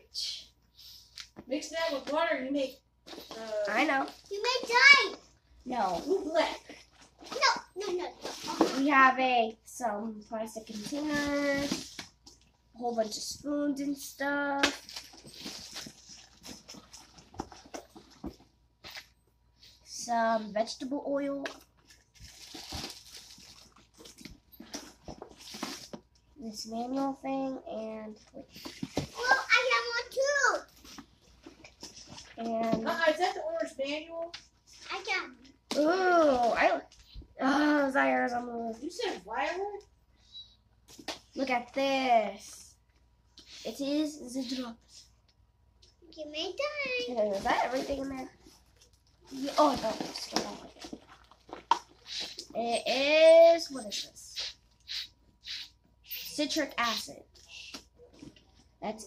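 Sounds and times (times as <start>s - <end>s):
items rustling in cardboard box: 10.6s - 12.1s, 14.8s - 18.5s, 21.8s - 26.1s, 47.0s - 52.5s
plastic packaging crinkling: 21.8s - 24.2s, 47.4s - 52.3s.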